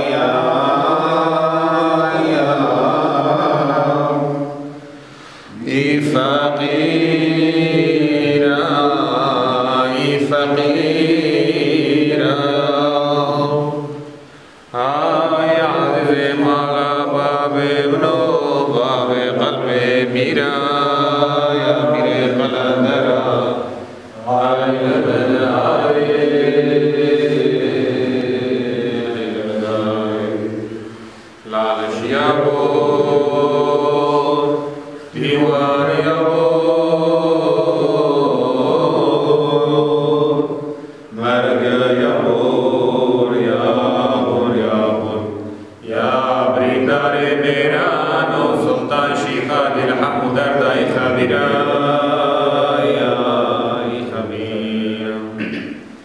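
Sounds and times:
men chanting a hymn: 0.0 - 56.0.

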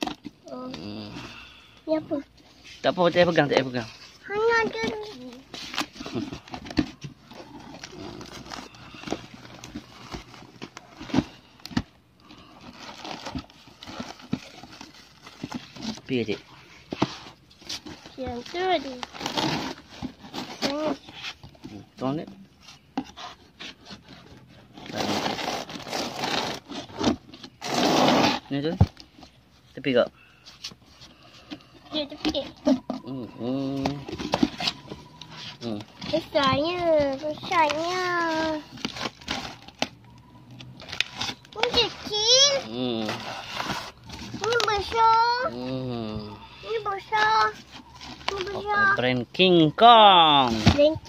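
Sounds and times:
bubble wrap and cardboard crinkling: 0.0 - 51.0
voices speaking: 31.9 - 38.8, 44.4 - 51.0.

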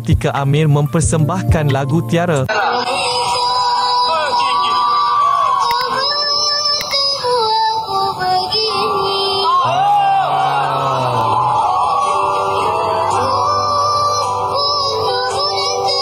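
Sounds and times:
backing music: 0.0 - 2.8, 8.2 - 16.0
boy singing into a microphone: 2.6 - 9.8, 12.6 - 16.0
deeper voice: 9.6 - 11.6.

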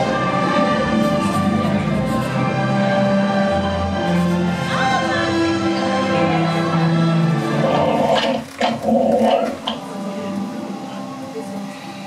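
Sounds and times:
animal-like growls: 7.6 - 9.9.

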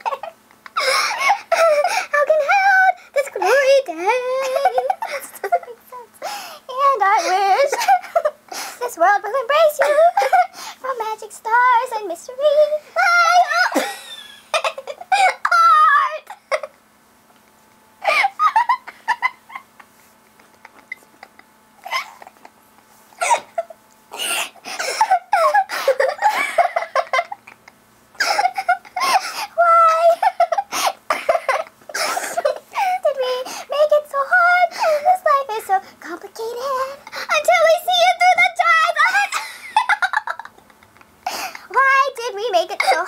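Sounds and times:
high-pitched giggling: 3.3 - 5.9, 18.0 - 22.6, 23.2 - 33.3.

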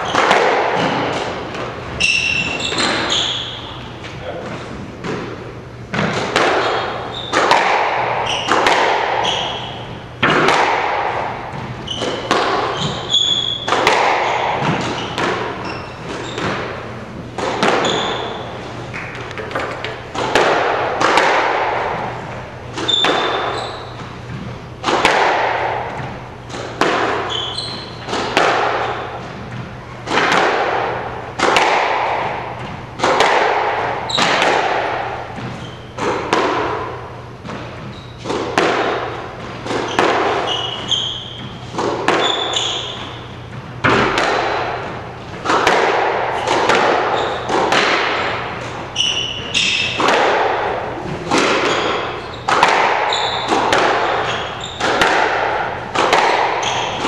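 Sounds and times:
squash ball cracking off rackets: 0.0 - 3.5, 5.0 - 57.0
court shoes squeaking: 0.0 - 57.0.

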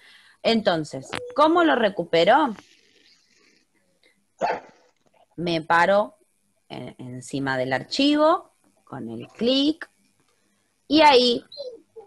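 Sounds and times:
dog barking: 4.4 - 4.8.

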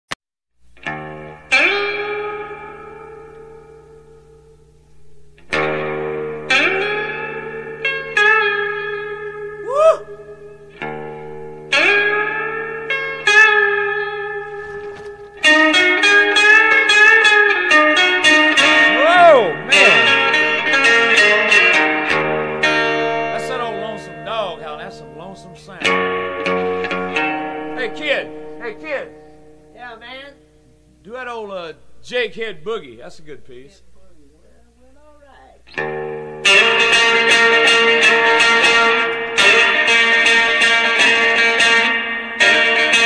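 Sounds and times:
blues guitar playing: 0.7 - 43.0.

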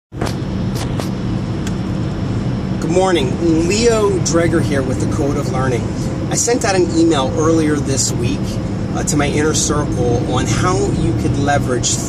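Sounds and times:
car cabin road rumble: 0.1 - 12.0.

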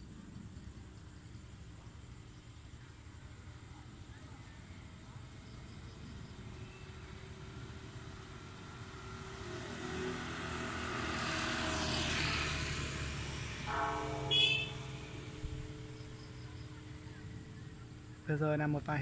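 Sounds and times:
vehicle passing: 6.3 - 19.0
steady pitched tone: 13.6 - 18.4.

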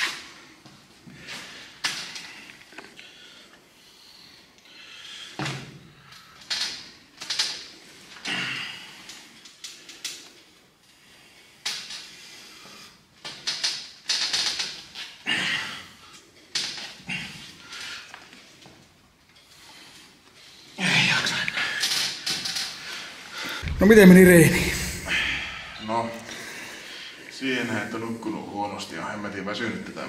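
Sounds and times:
men breathing heavily: 23.1 - 27.2
men grunting with effort: 23.6 - 25.8.

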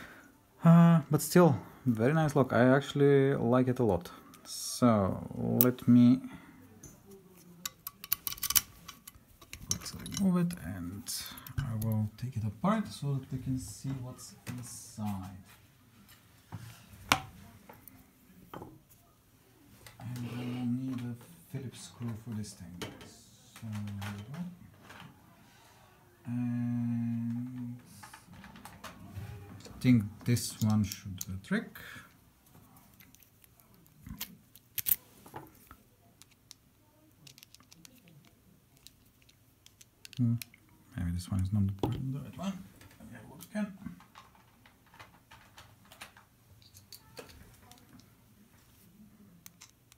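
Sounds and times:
small tools knocking and clicking: 7.6 - 10.6, 37.2 - 40.6, 44.0 - 48.1
screwdriver and lock clicks: 7.7 - 10.2.

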